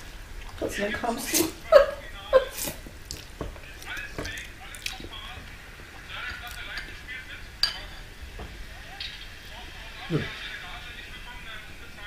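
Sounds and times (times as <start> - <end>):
fork clinking against glass bowl: 7.6 - 8.0.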